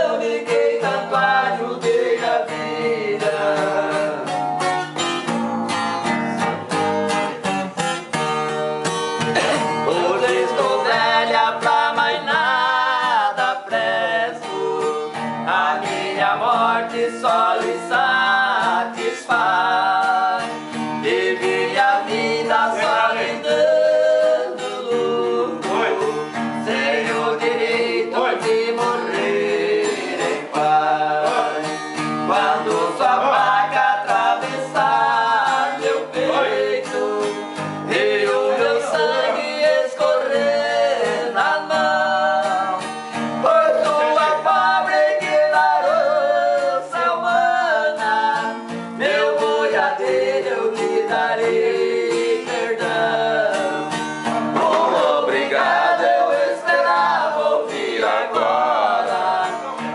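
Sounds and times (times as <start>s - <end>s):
men singing together: 0.0s - 4.5s, 9.2s - 59.9s
strummed acoustic guitar: 0.0s - 59.9s.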